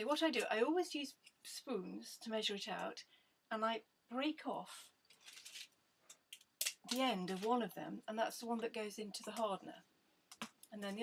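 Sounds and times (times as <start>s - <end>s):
plastic rustling and clicks: 5.1s - 7.6s.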